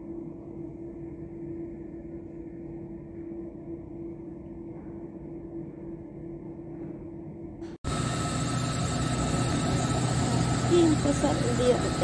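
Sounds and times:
heavy machinery engine running: 0:07.9 - 0:12.0.

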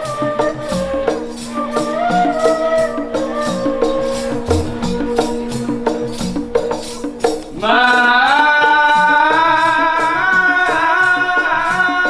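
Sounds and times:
frame drum percussion: 0:00.0 - 0:12.0.

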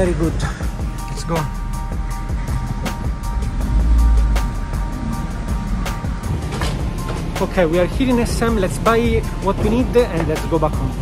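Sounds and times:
background music: 0:00.0 - 0:11.0
car driving slowly rumble: 0:00.3 - 0:11.0.

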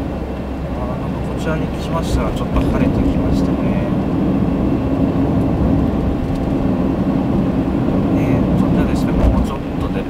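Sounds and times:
car engine hum: 0:00.0 - 0:10.0
tyres rumbling on road: 0:00.0 - 0:10.0.

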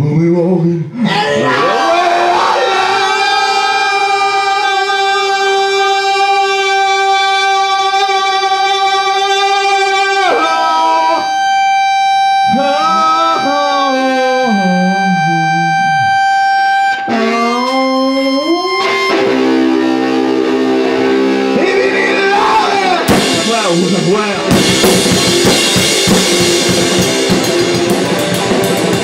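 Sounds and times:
ringing electric guitar: 0:01.6 - 0:29.0
person singing long note: 0:12.4 - 0:16.2.

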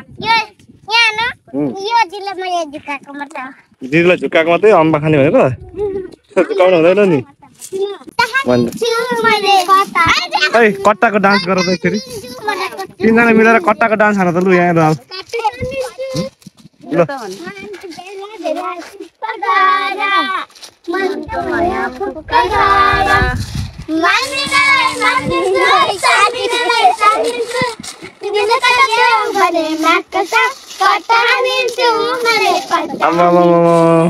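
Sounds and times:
girls talking: 0:00.0 - 0:03.8, 0:05.6 - 0:33.5
girls singing in high voices: 0:19.2 - 0:33.0.

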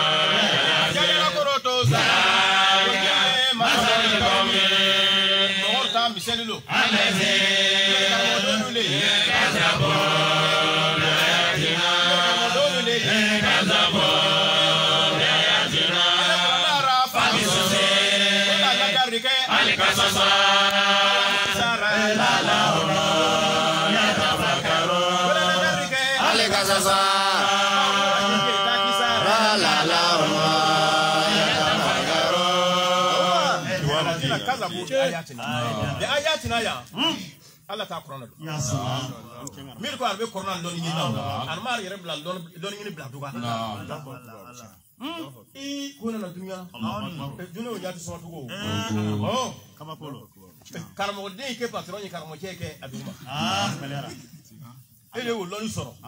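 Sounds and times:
men chanting devotional song: 0:00.0 - 0:56.0.

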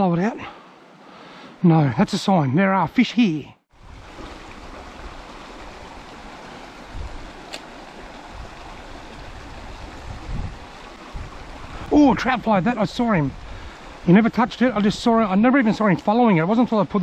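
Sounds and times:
creek water running over rocks: 0:03.2 - 0:17.0.

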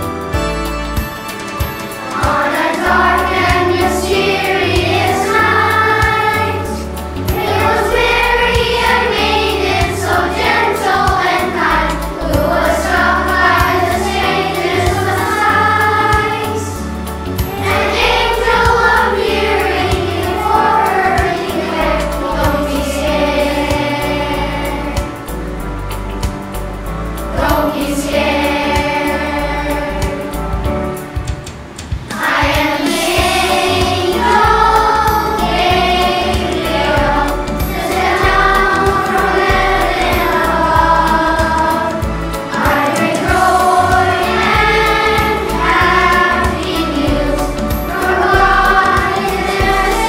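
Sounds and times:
children's choir singing: 0:00.0 - 0:25.6, 0:26.2 - 0:50.0
instrumental accompaniment: 0:00.0 - 0:50.0.

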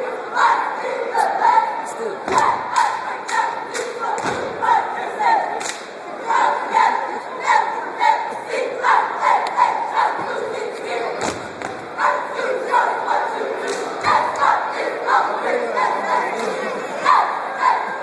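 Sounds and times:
cheerleaders chanting in unison: 0:00.0 - 0:18.0
sharp hand claps: 0:02.3 - 0:04.4, 0:05.6 - 0:05.9, 0:13.6 - 0:14.0.

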